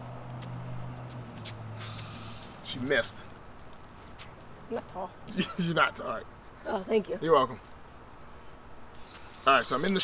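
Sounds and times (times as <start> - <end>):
garden hose spraying water: 1.8 - 4.0, 9.1 - 10.0.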